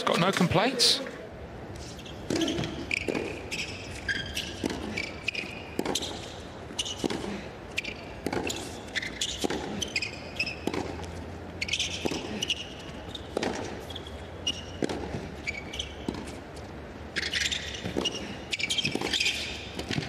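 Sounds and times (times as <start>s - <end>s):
shoes squeaking on court: 1.8s - 20.0s
racket hitting tennis ball: 2.2s - 11.0s, 11.6s - 12.6s, 13.2s - 16.4s, 17.1s - 20.0s
tennis ball bouncing: 2.2s - 20.0s.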